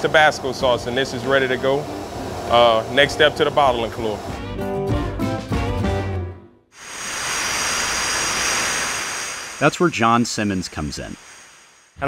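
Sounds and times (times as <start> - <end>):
machinery hiss: 0.0 - 4.4, 6.8 - 12.0
thin high whines: 6.8 - 12.0.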